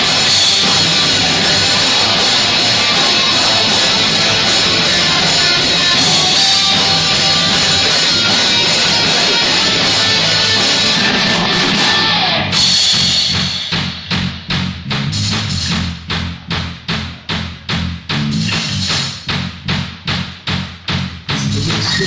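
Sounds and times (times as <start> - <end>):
bass guitar notes: 0.0 - 22.0
steady drum beat: 0.0 - 22.0.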